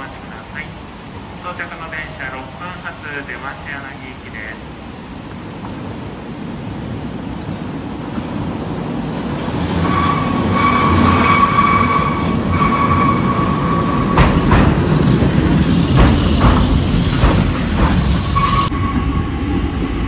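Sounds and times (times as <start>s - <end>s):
electric train rumble: 0.0s - 20.0s
wheels clacking over rail joints: 8.0s - 20.0s
high squeal: 9.4s - 14.6s, 15.7s - 19.6s.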